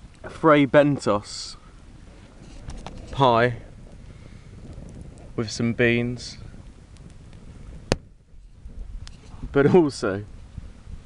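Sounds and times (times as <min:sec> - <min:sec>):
campfire crackle: 0:00.0 - 0:11.0.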